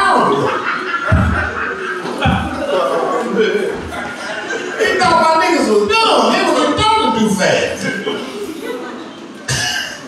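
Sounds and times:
man laughing into microphone: 0:00.0 - 0:05.1
loud cough into microphone: 0:09.5 - 0:10.0.

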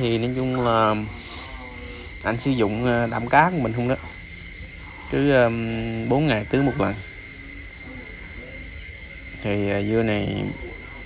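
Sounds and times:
crickets droning: 0:00.0 - 0:11.0.

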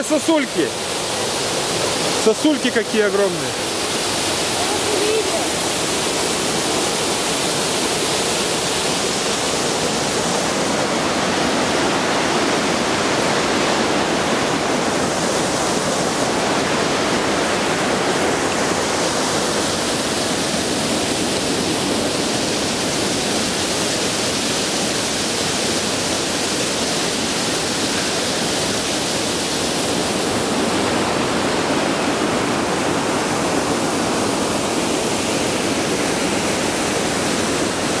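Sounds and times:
waterfall rushing: 0:00.0 - 0:38.0.

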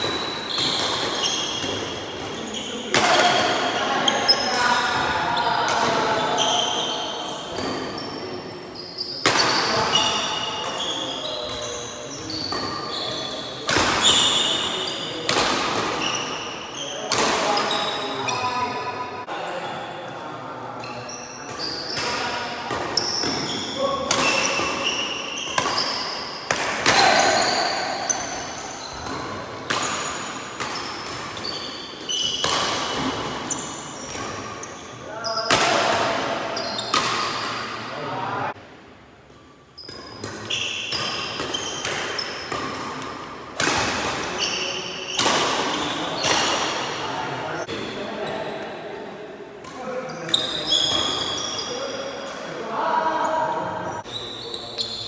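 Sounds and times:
rackets hitting shuttlecock: 0:00.0 - 0:03.7, 0:12.4 - 0:14.6, 0:15.2 - 0:16.3, 0:21.5 - 0:34.6, 0:35.4 - 0:37.8, 0:39.8 - 0:47.0.

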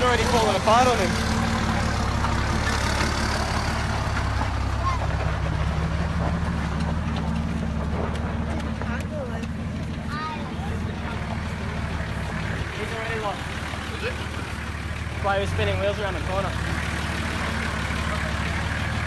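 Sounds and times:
truck engine at low revs: 0:00.0 - 0:19.0
voices in background: 0:08.4 - 0:18.8.

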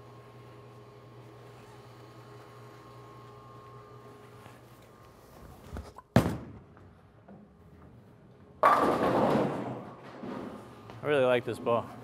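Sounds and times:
bowling alley low hum: 0:00.0 - 0:12.0
bowling ball thunk on lane: 0:08.6 - 0:10.5.

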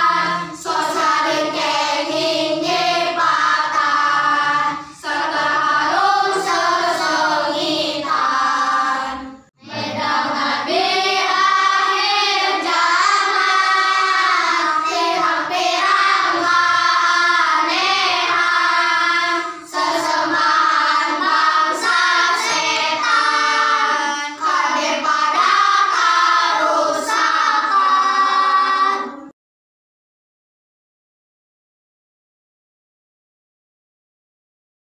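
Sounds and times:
children singing in unison: 0:00.0 - 0:29.3.

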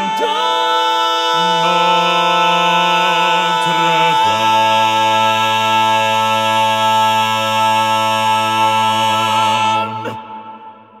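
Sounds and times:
quartet singing a cappella: 0:00.0 - 0:10.8.

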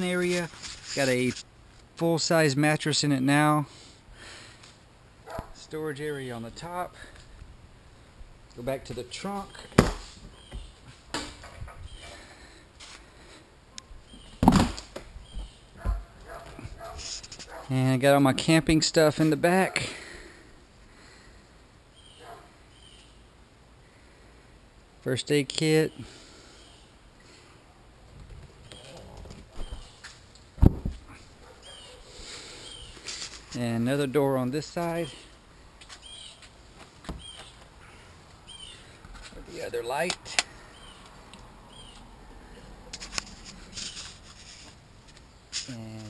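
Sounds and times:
bird chirps: 0:09.5 - 0:10.8, 0:29.6 - 0:30.1, 0:31.6 - 0:32.0, 0:32.6 - 0:33.0, 0:36.0 - 0:36.4, 0:37.2 - 0:38.9, 0:41.7 - 0:42.0
hatch thumping open: 0:09.8 - 0:10.1, 0:14.4 - 0:15.1.

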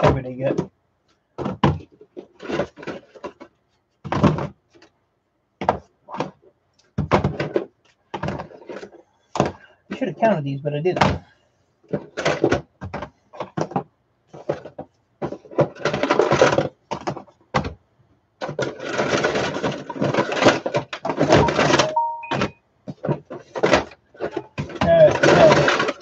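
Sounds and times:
batteries rattling in plastic tub: 0:01.4 - 0:04.8, 0:07.0 - 0:10.1, 0:11.9 - 0:17.8, 0:18.4 - 0:22.2, 0:22.9 - 0:26.0.

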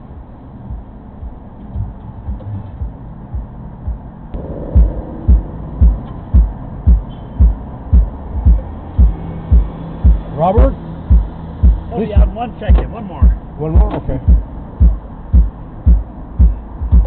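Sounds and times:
bass drum beat from car: 0:00.2 - 0:17.0.

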